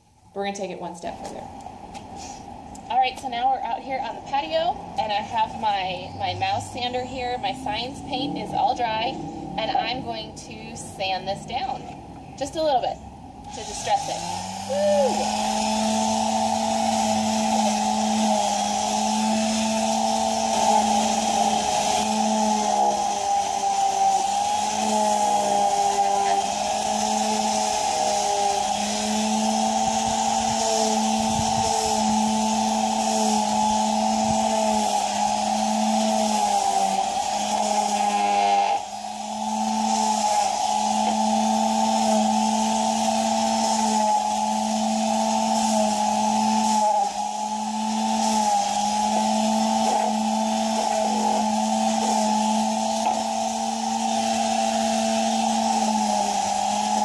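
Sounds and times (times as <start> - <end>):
electric sander whining: 13.4 - 57.0.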